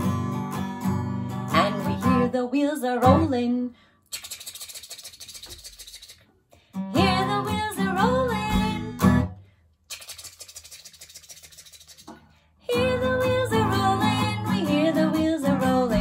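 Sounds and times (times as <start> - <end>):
acoustic guitar strumming: 0.0 - 2.3, 6.9 - 9.3
woman singing: 1.5 - 3.8, 6.9 - 9.2, 12.7 - 16.0.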